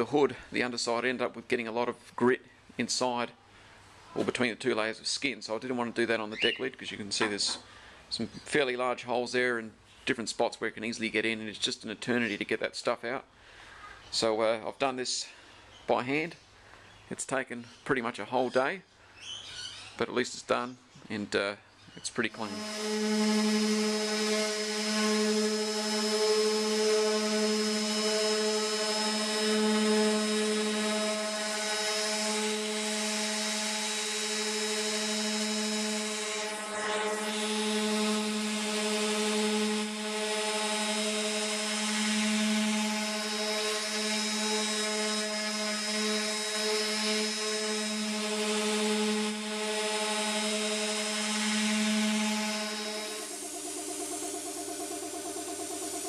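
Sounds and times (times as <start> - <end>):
orbital sander on sheet metal: 22.2 - 56.0.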